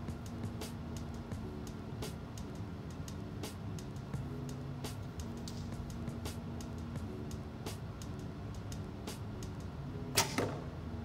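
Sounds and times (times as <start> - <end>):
bow string snap: 10.1 - 10.7.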